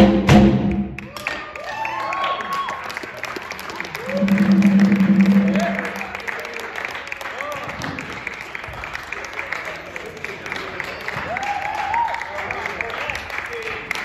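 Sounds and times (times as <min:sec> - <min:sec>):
cheers and shouts: 0:01.0 - 0:02.9, 0:11.2 - 0:12.4
applause: 0:01.0 - 0:14.0.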